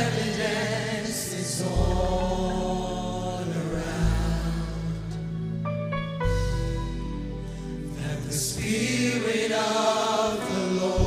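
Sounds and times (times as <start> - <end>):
keyboard and bass: 0.0 - 11.0
voices singing sustained chord: 0.0 - 11.0.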